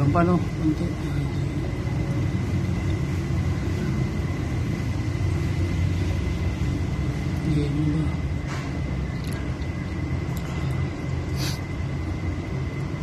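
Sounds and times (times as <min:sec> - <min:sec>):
low mechanical rumble: 0:00.0 - 0:13.0.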